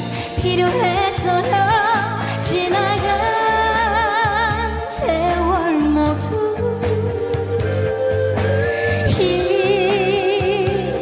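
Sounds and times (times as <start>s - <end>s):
recorded accompaniment with beat: 0.0s - 11.0s
woman singing a ballad: 0.0s - 11.0s.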